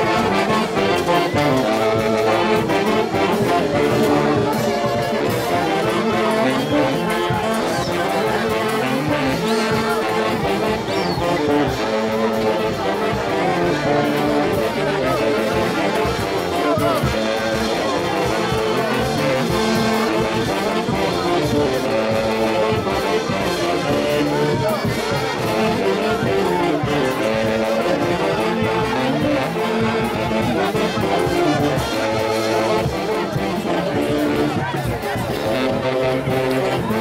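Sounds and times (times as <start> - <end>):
brass band playing: 0.0 - 37.0
crowd voices: 0.0 - 37.0.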